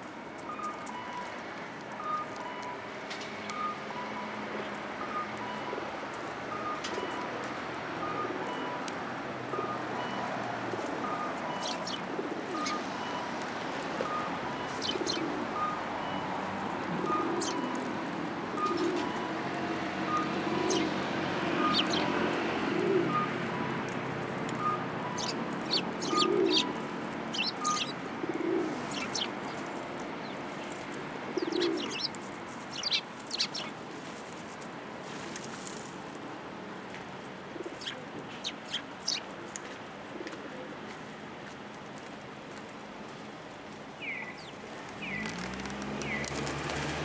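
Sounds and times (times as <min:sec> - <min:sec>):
pigeon cooing: 0:10.8 - 0:12.8, 0:14.0 - 0:15.7, 0:17.0 - 0:17.8, 0:18.5 - 0:19.2, 0:20.1 - 0:20.9, 0:21.5 - 0:23.4, 0:24.6 - 0:29.3, 0:31.3 - 0:32.1
sparrows chirping: 0:11.5 - 0:12.0, 0:12.6 - 0:12.9, 0:14.6 - 0:15.3, 0:17.0 - 0:17.8, 0:20.1 - 0:20.9, 0:21.5 - 0:22.2, 0:25.1 - 0:33.8, 0:37.7 - 0:39.3, 0:44.0 - 0:45.4, 0:46.0 - 0:46.4.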